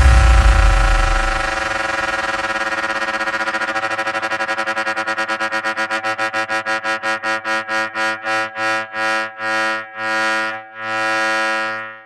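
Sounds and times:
deep bass: 0.0 - 2.6.

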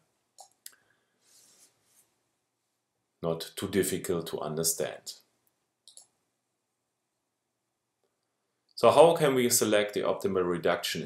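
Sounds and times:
faint mouse clicks: 5.8 - 6.2.

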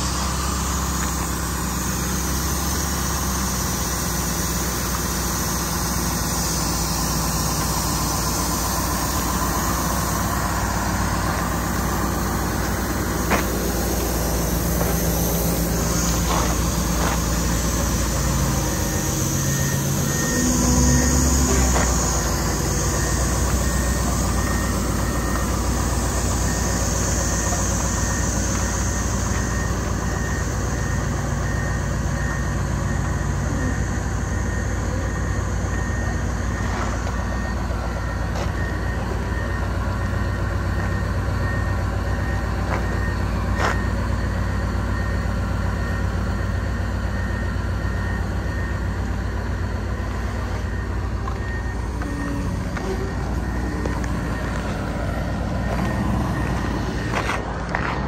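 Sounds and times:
diesel truck engine idling: 0.0 - 58.0.

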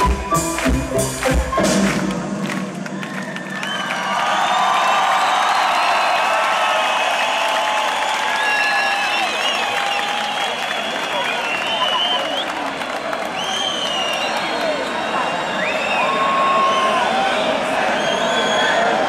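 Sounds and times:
concert crowd cheering: 0.0 - 19.0.

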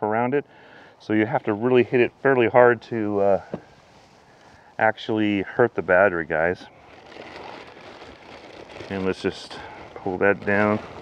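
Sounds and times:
plastic wrapping crinkling: 3.6 - 11.0.

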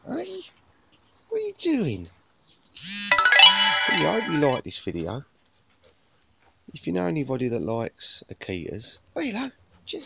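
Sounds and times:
bright chime ringing: 3.1 - 4.6.

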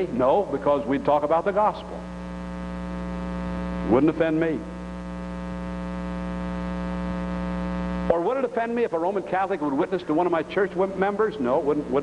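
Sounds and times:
man's voice: 0.0 - 2.1, 3.8 - 4.7, 8.1 - 12.0
electrical mains hum: 0.0 - 12.0.

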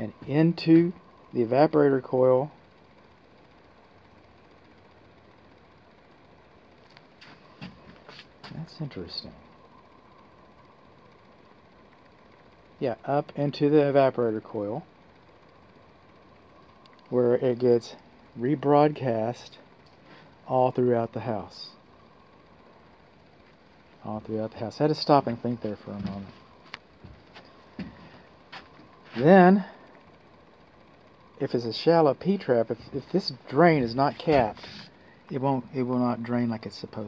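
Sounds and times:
faint mechanical hum: 0.0 - 37.0
soft handling noises: 25.2 - 29.4.

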